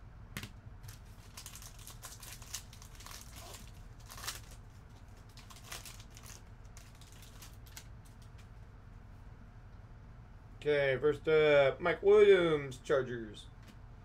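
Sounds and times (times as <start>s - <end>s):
foil wrapper crinkling and tearing: 0.8s - 8.5s.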